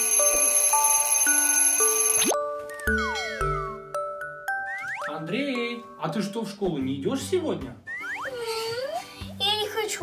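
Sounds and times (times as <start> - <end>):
smartwatch alarm electronic tune: 0.0 - 5.3.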